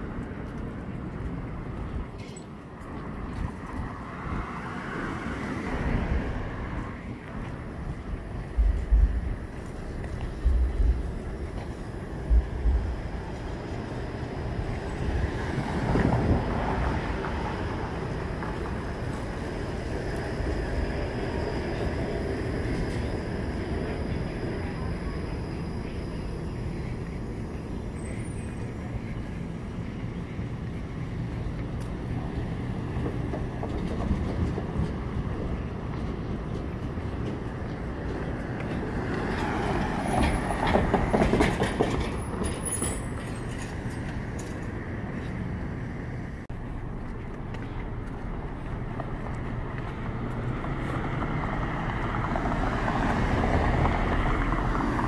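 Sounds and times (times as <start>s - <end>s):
city street traffic: 0.0s - 55.0s
streetcar on rails: 0.0s - 55.0s.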